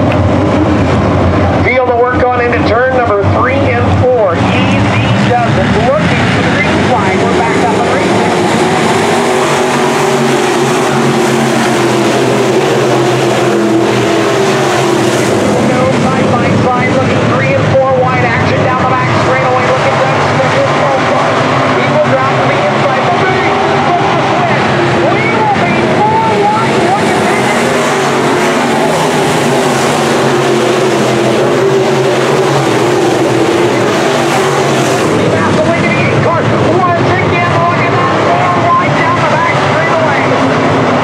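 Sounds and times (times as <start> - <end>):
race car engines: 0.0 - 41.0.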